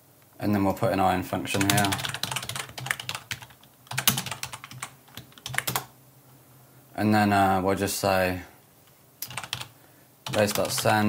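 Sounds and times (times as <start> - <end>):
typing on computer keyboard: 1.6 - 5.9, 9.2 - 10.9.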